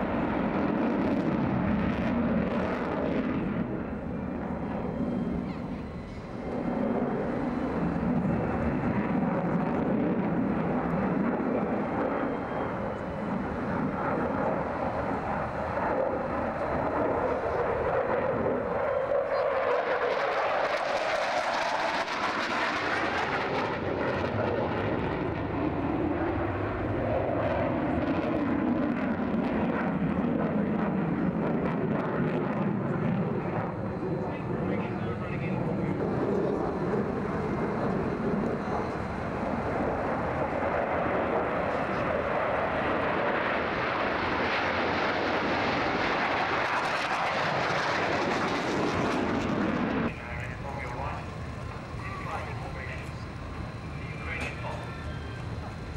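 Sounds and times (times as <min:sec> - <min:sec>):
jet engines rushing: 0:00.0 - 0:55.9.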